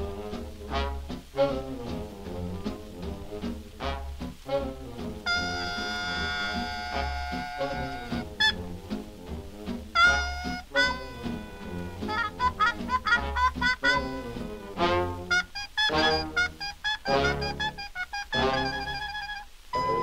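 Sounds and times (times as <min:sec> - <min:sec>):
swing music with brass: 0:00.0 - 0:20.0.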